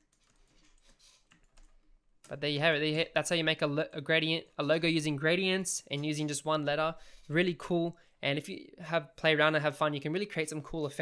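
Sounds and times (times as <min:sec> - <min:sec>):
computer keyboard and mouse clicks: 0:00.0 - 0:01.8.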